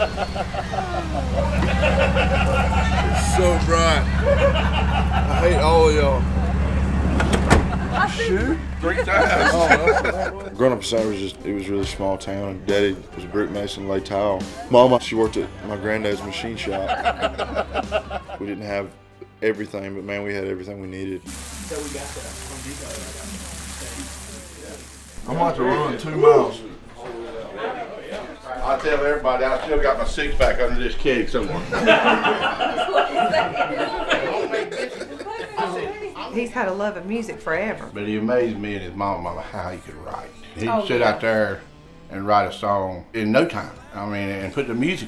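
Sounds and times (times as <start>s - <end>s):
idling vehicle hum: 0.0s - 9.2s
voices: 0.0s - 13.9s, 21.3s - 28.4s
food sizzling on a griddle: 21.3s - 25.8s.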